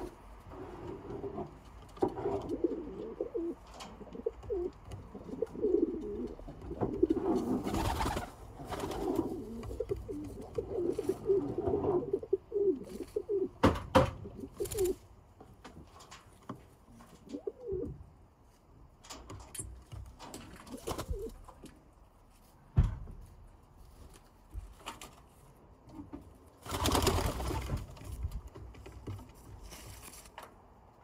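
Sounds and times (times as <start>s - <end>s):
pigeons cooing: 2.1s - 13.6s, 14.2s - 15.0s, 17.2s - 18.0s, 20.7s - 21.4s.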